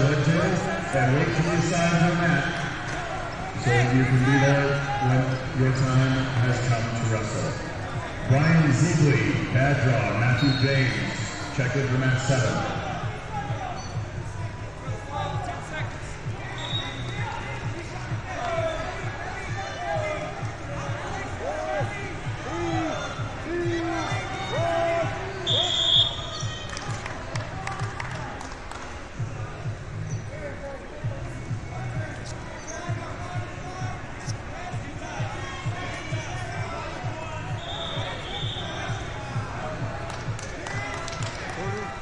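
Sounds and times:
shouts and voices: 0.0 - 28.4
referee's whistle blast: 10.0 - 11.2, 16.5 - 17.1, 25.4 - 26.6, 37.5 - 39.1.

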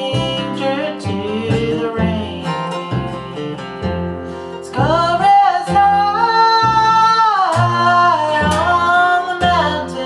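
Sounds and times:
acoustic guitar: 0.0 - 10.0
plucked upright bass: 0.0 - 10.0.

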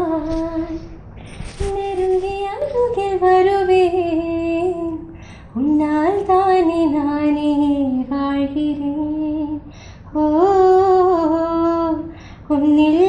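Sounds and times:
woman singing unaccompanied: 0.0 - 1.0, 1.6 - 13.0.

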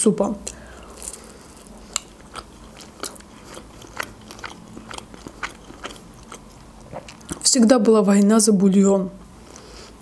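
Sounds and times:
pastry crackling while chewed: 0.9 - 7.6.

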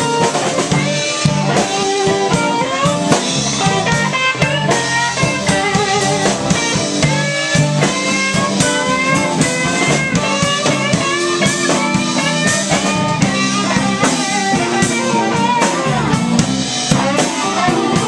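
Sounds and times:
drum kit: 0.0 - 18.0
electric bass: 0.0 - 18.0
electric guitar lead lines: 0.0 - 18.0.

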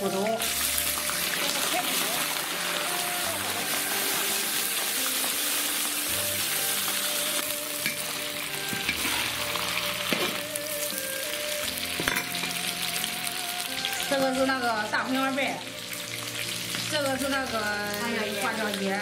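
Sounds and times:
meat sizzling in hot oil: 0.0 - 19.0.

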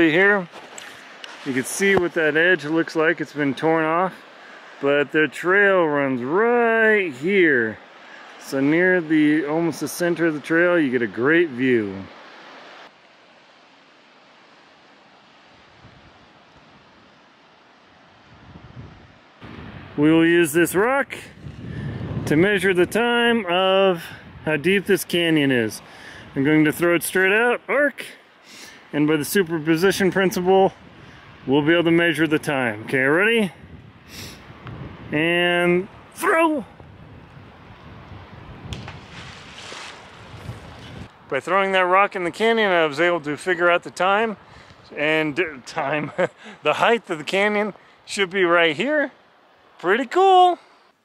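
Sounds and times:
creek flowing over rocks: 0.0 - 18.4
moving water: 0.0 - 50.9
wind: 0.0 - 51.0
wind gusts on microphone: 15.2 - 27.5, 28.9 - 41.3
rock splashing into river: 38.7 - 41.0.

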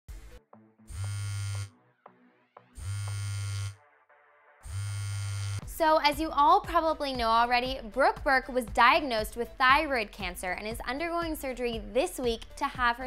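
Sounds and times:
smartphone buzzing on vibrate: 0.9 - 1.7, 2.8 - 3.8, 4.6 - 5.8.

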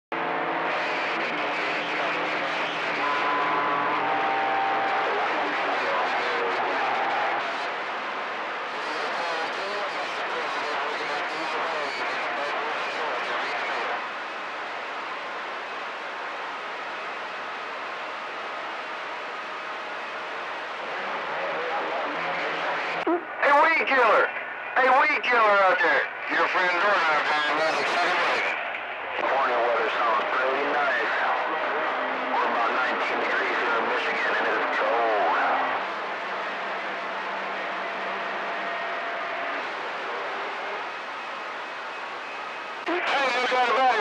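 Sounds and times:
faint garbled radio voices: 0.1 - 44.0
radio static hiss: 0.7 - 15.0, 20.8 - 36.3, 38.4 - 44.0.

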